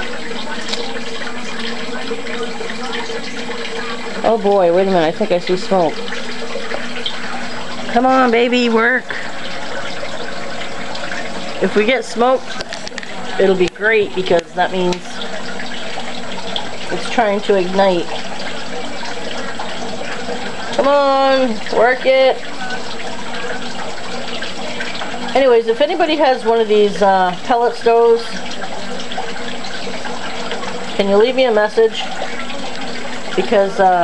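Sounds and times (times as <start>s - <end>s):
pellet stove fans rushing air: 0.0s - 34.0s.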